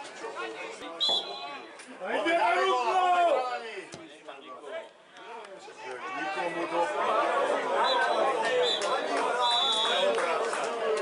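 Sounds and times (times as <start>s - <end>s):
voices shouting and calling: 5.8s - 10.2s.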